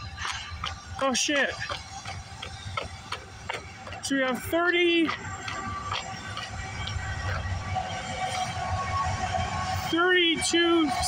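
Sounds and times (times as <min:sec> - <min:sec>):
diesel locomotive rumble: 0:00.0 - 0:11.0
faint steady tones: 0:00.0 - 0:11.0.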